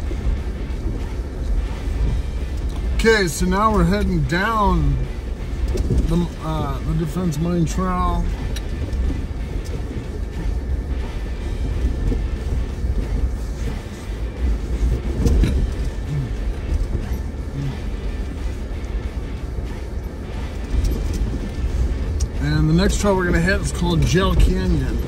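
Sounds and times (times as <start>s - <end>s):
low engine and drivetrain rumble: 0.0s - 25.0s
quiet music: 0.0s - 25.0s.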